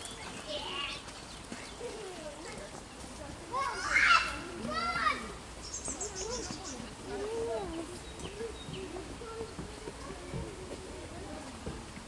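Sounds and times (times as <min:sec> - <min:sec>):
background voices outdoors: 0:00.0 - 0:12.0.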